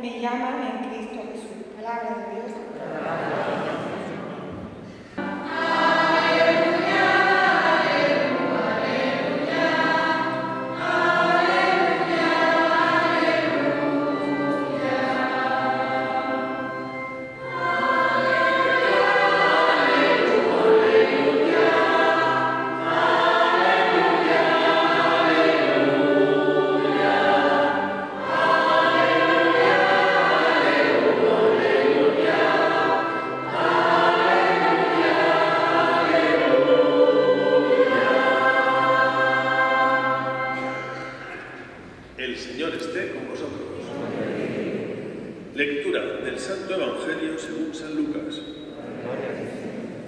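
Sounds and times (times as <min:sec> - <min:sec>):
children's choir singing: 0:02.6 - 0:42.0, 0:43.5 - 0:45.5, 0:48.2 - 0:50.0.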